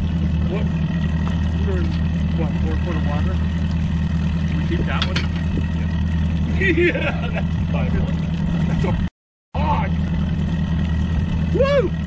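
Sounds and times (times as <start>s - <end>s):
outboard motor humming: 0.0s - 12.0s.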